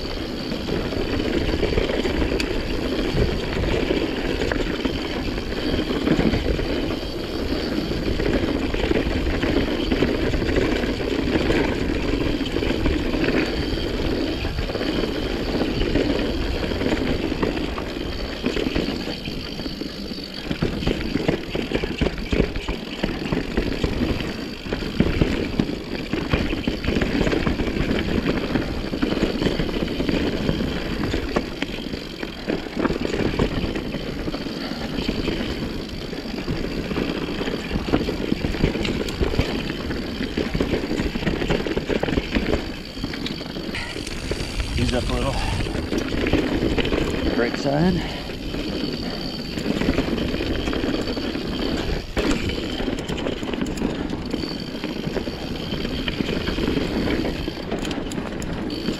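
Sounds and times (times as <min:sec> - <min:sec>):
bike rattling over bumps: 0:00.0 - 0:58.9
tyre and wind rumble: 0:00.0 - 0:58.9.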